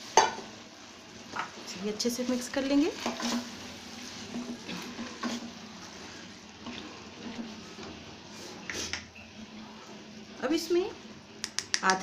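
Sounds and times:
pressure cooker hiss: 0.0 - 12.0
spatula scraping a pot: 3.0 - 9.0.

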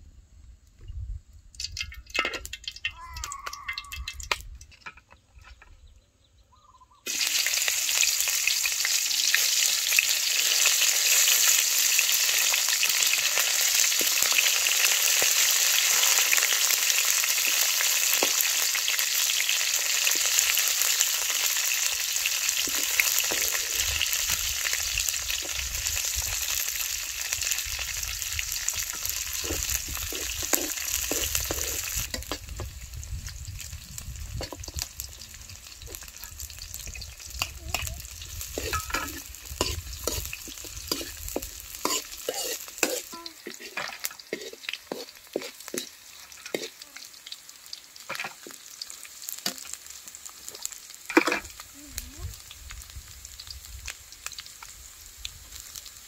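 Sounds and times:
vegetables sizzling in hot oil: 7.0 - 56.0
metal ladle scraping wok: 28.7 - 32.6, 37.7 - 46.8.

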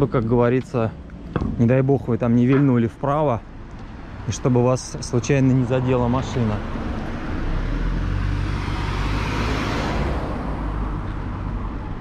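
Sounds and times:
car passing by: 5.6 - 12.0.

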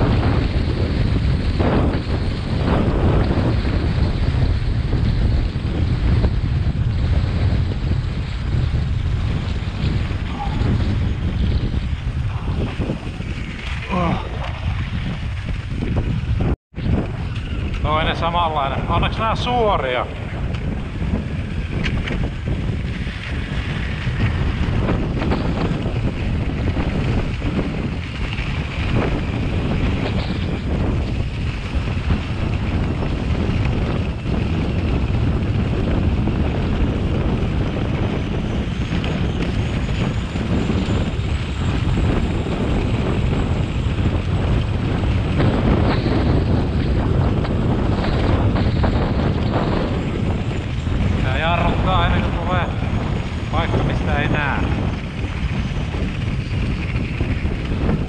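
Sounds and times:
skis scraping over icy snow: 0.0 - 58.0
wind rushing over microphone: 0.0 - 58.0.

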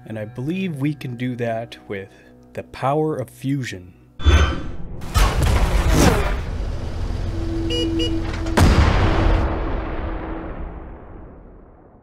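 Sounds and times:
heavy impact hit with deep boom: 8.5 - 12.0.

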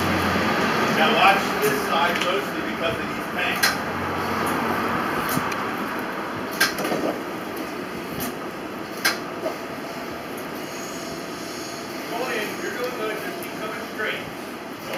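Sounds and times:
forklift engine rumbling: 0.0 - 14.9.

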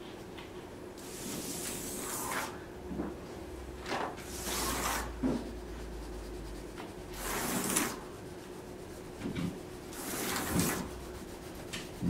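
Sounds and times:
low room hum: 0.0 - 12.0
marker scratching on paper: 5.7 - 12.0.

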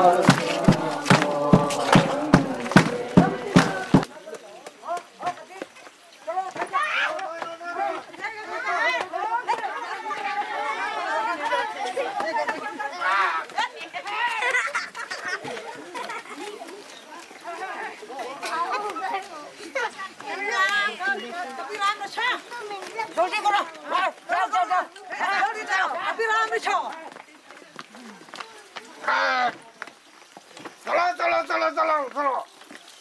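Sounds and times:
distant voices talking: 0.0 - 4.6
people chattering: 0.0 - 33.0.

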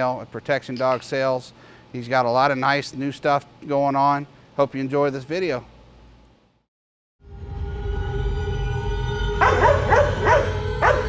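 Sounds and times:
droning music: 7.2 - 11.0
dog barking: 9.4 - 11.0.

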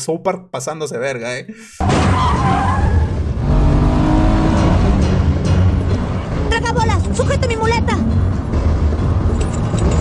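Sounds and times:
tire squeal: 1.8 - 3.2.

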